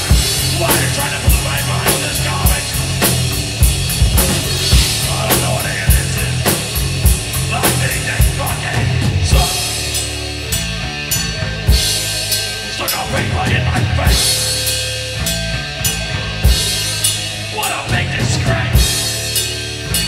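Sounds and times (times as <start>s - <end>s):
bass guitar: 0.0s - 20.0s
distorted electric guitar: 0.0s - 20.0s
drum kit hard beat: 0.0s - 20.0s.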